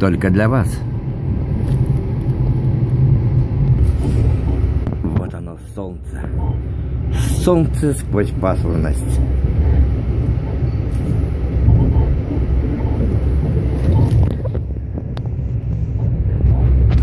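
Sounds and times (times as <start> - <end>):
electric train rumbling: 0.0 - 17.0.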